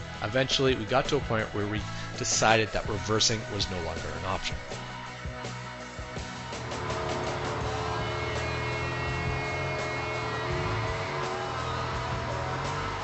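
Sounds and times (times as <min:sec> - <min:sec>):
background music: 0:00.0 - 0:13.0
engine cooling fan drone: 0:00.0 - 0:13.0.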